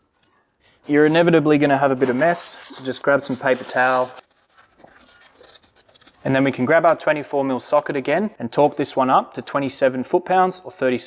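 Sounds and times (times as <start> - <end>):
paper towel rubbing: 0.8 - 6.8.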